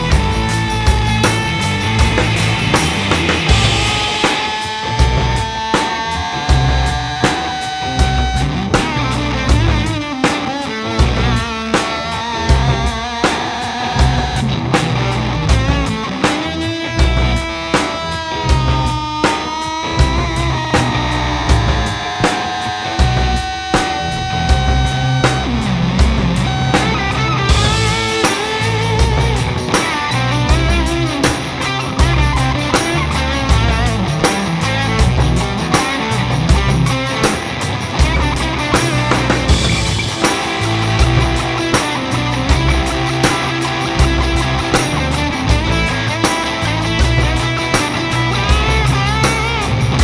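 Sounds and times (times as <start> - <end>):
bass guitar: 0.0 - 50.0
distorted electric guitars: 0.0 - 50.0
lead guitar with slides and bends: 0.0 - 50.0
steady drum beat: 0.0 - 50.0.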